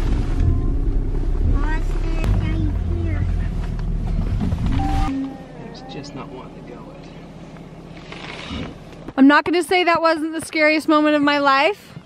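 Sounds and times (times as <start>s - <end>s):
truck engine rumbling: 0.0s - 10.3s.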